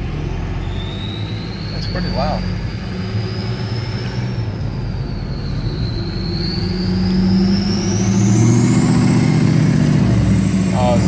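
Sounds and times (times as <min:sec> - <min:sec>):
diesel truck exhaust: 0:00.0 - 0:11.0
turbocharger whistle: 0:00.0 - 0:11.0.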